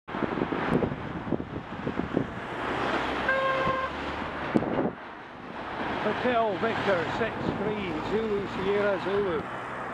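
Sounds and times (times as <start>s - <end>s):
wind and road noise: 0.1s - 9.9s
car horn toot: 3.2s - 4.0s.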